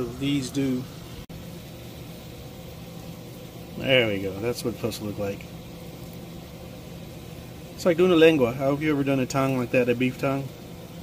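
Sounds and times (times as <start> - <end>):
machine hum and hiss: 0.0 - 11.0.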